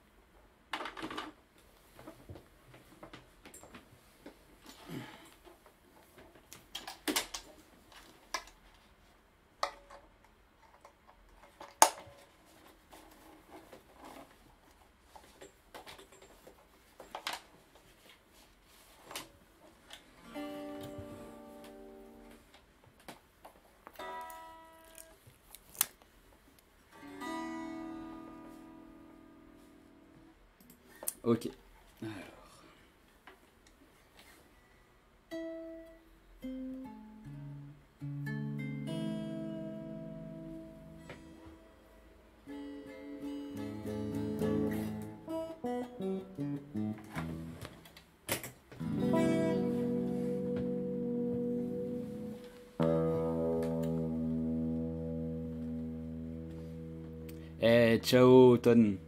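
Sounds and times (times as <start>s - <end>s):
guitar chords ringing: 20.2s - 22.4s, 24.0s - 25.1s, 27.0s - 30.3s, 35.3s - 47.8s, 48.8s - 59.0s.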